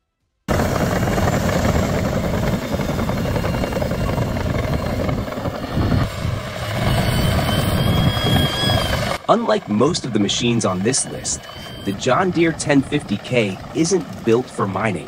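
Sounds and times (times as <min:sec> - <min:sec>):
bulldozer engine and tracks rumbling: 0:00.5 - 0:15.0
faint high squeal: 0:02.7 - 0:09.2, 0:10.7 - 0:12.3.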